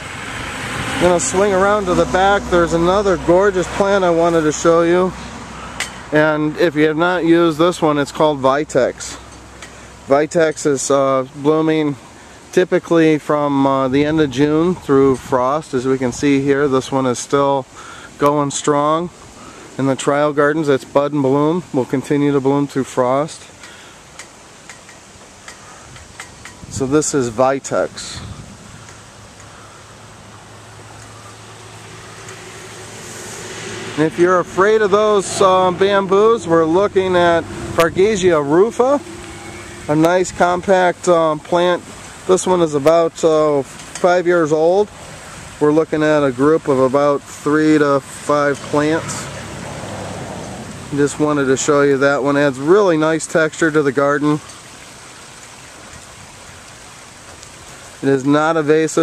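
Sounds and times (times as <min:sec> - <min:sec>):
highway traffic rushing: 0:00.0 - 0:59.0
water splashing from small waterfall: 0:00.0 - 0:59.0.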